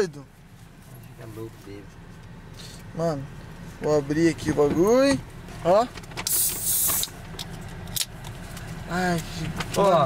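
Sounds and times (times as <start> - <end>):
low rumble inside car: 0.0 - 10.0.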